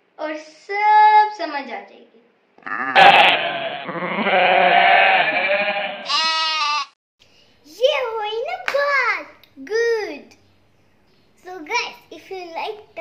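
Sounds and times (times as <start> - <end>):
goat bleating: 2.6 - 7.0.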